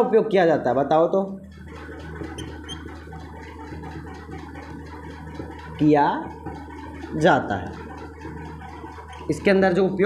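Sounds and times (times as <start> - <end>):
marker scratching on whiteboard: 2.2 - 3.0
marker squeaks: 2.3 - 3.0.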